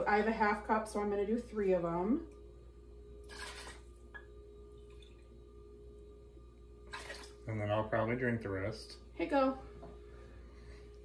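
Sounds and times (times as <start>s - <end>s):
faint steady hum: 0.0s - 11.0s
liquid pouring into metal cup: 3.2s - 3.9s, 6.8s - 7.4s.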